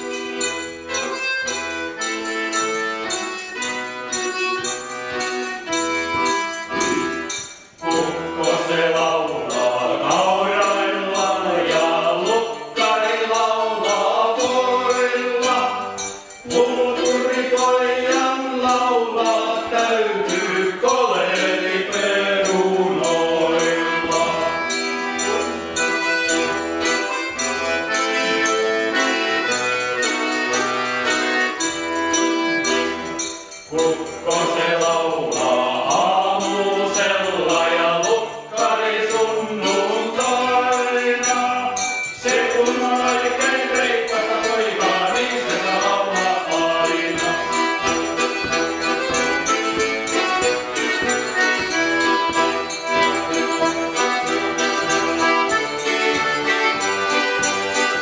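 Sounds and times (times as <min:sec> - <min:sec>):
mandolin strumming: 0:00.0 - 0:37.1, 0:39.1 - 0:58.0
button accordion folk melody: 0:00.0 - 0:58.0.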